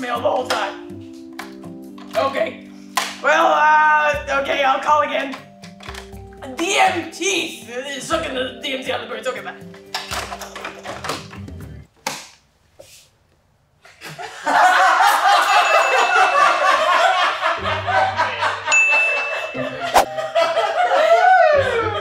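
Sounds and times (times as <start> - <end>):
comedic music: 0.0 - 11.8, 14.5 - 22.0
loud laughter: 13.9 - 22.0
bright ding: 18.7 - 19.7.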